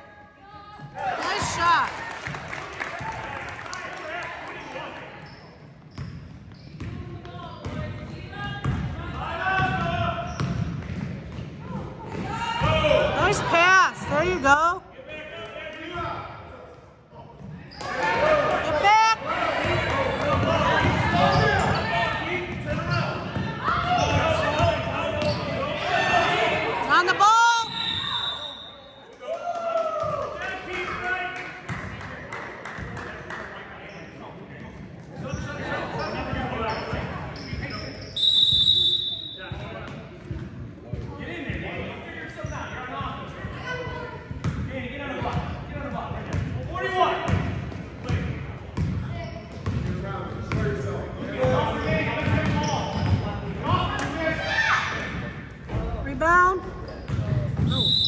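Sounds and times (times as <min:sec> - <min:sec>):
short whistle blow: 0:27.6 - 0:29.0, 0:38.1 - 0:39.4, 0:57.7 - 0:58.0
basketball bouncing on wooden floor: 0:49.6 - 0:50.6.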